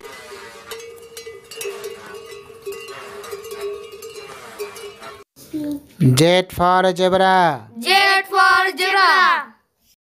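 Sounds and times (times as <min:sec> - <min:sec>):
yak bells ringing: 0:00.0 - 0:05.3.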